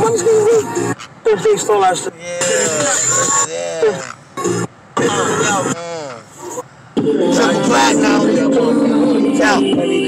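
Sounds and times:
background music: 7.0 - 10.0.

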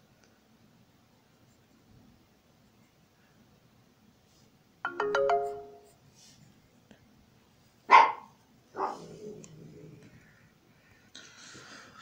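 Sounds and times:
electronic chime: 4.9 - 5.9.

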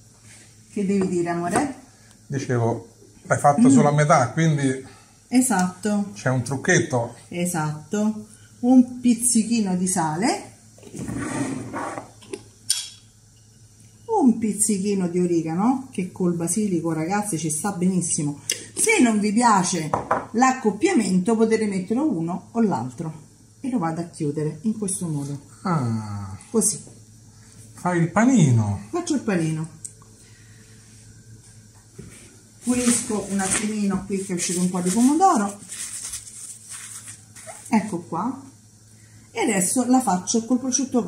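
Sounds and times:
faint steady hiss: 0.0 - 41.0.

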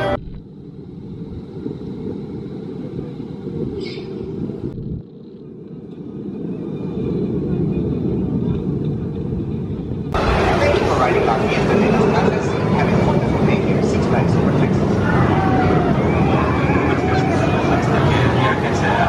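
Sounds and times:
low rumble of outdoor noise: 0.0 - 19.0.

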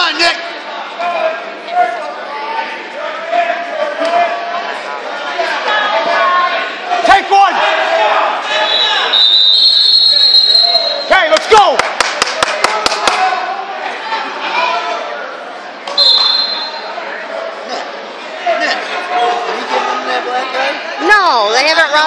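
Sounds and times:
voices and shouting: 0.0 - 22.0
referee's whistle: 8.6 - 11.2, 15.9 - 16.9.

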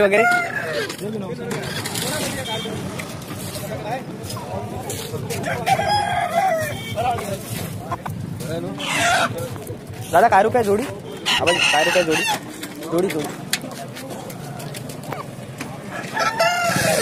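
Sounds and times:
murmur of voices: 0.0 - 17.0
rooster crowing: 0.1 - 0.9, 5.4 - 6.9, 15.9 - 17.0.

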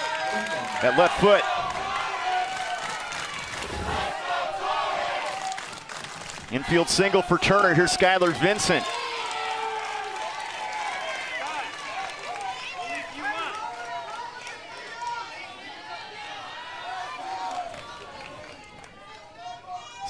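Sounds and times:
crowd voices talking and calling out: 0.0 - 8.9.

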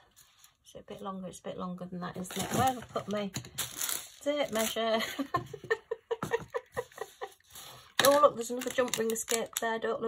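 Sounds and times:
woman laughing: 4.9 - 7.5.

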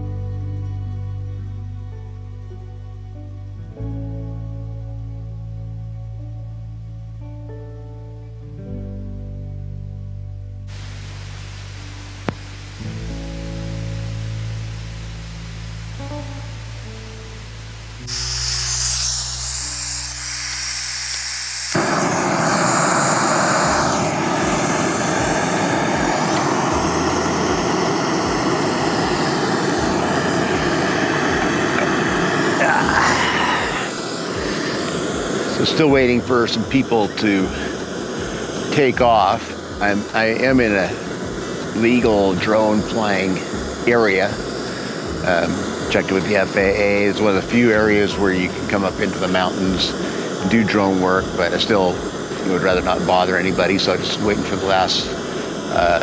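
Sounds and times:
soft background music: 0.0 - 20.3, 23.8 - 34.3, 35.0 - 56.0
camping stove burner hissing: 10.7 - 56.0.

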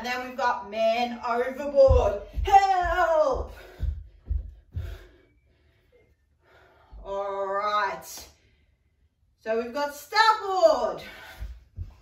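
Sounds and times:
woman breathing: 3.5 - 7.1, 11.0 - 12.0.

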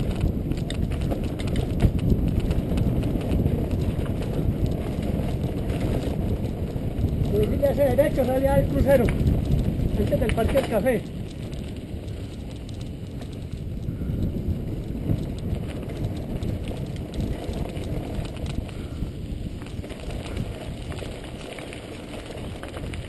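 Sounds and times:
bike clicks and rattles: 0.0 - 23.0
bike tyres rumbling on gravel: 0.0 - 23.0.

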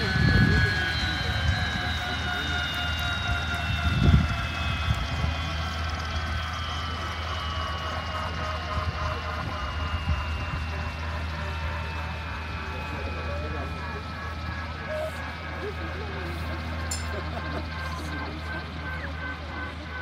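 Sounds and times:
helicopter turbine whine: 0.0 - 20.0
rotor low rumble: 0.0 - 20.0.

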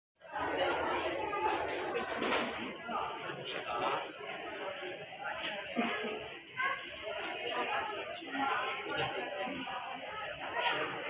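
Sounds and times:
crowd chatter: 0.2 - 11.0.

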